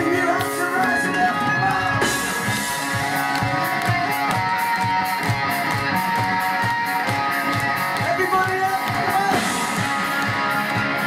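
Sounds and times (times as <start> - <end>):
bass: 0.0 - 11.0
drums: 0.0 - 11.0
electric guitars: 0.0 - 11.0.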